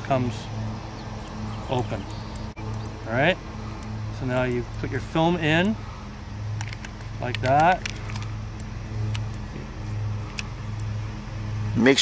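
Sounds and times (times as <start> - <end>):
motor engine humming: 0.0 - 12.0
film camera clicks: 6.5 - 9.5.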